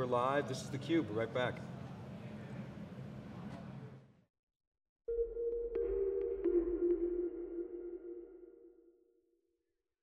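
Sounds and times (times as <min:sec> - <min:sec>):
low electronic drone: 0:05.1 - 0:09.0.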